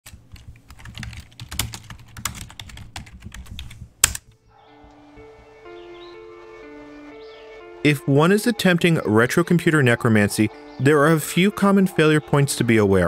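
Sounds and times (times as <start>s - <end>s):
typing on computer keyboard: 0.1s - 4.2s
music with long held notes: 4.5s - 13.0s.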